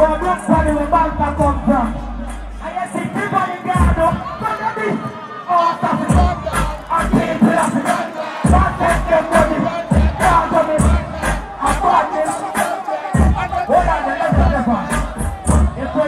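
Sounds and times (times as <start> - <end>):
dancehall beat with heavy bass: 0.0 - 16.0
crowd shouting along: 2.2 - 16.0.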